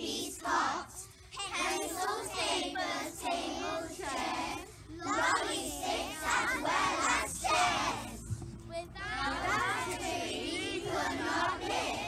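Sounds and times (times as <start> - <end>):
children singing in unison: 0.0 - 8.3, 9.0 - 12.0.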